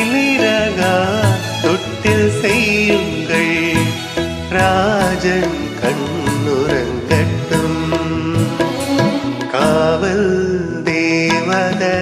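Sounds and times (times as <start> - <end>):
instrumental backing with beat: 0.0 - 12.0
man singing: 0.0 - 12.0.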